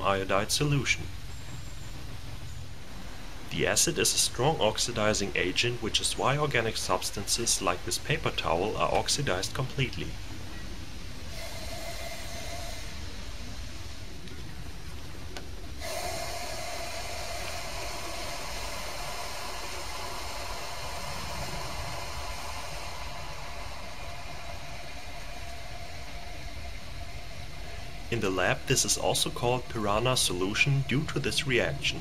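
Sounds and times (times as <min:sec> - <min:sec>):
faint steady tone: 0:00.0 - 0:32.0.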